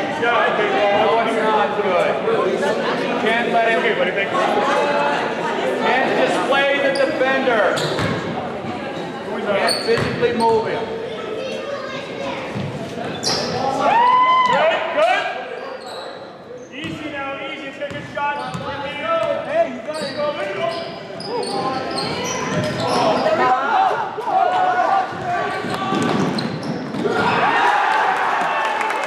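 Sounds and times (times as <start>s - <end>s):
echoing voices: 0.0s - 28.2s.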